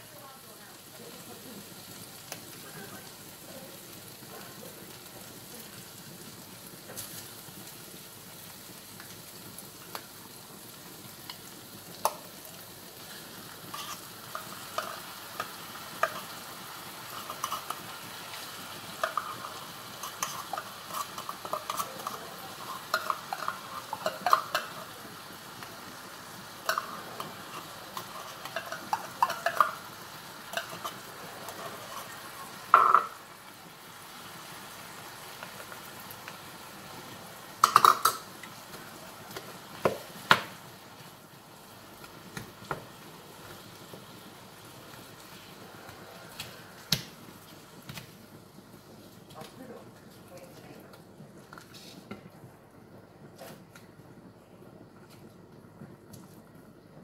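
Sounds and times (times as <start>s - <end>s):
meatballs sizzling in a frying pan: 0.0s - 57.0s
clicks and scrapes of stirring: 13.7s - 16.4s, 17.1s - 17.9s, 18.9s - 24.9s, 26.6s - 29.8s, 30.5s - 32.6s.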